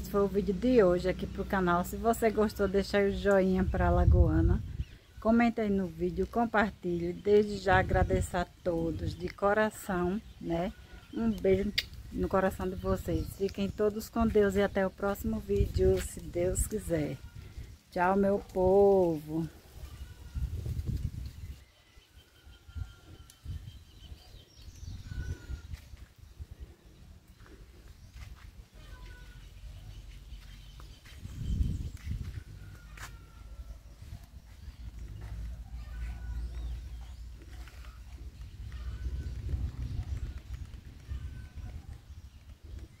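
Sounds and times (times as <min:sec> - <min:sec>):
wind rumbling on microphone: 0:02.3 - 0:43.0
faint high bird chirps: 0:21.3 - 0:25.9
faint bird calls: 0:21.5 - 0:43.0.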